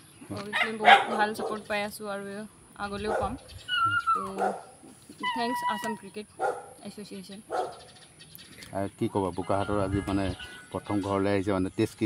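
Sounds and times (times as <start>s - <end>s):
voices: 0.3s - 7.8s
dog crying: 3.1s - 4.7s.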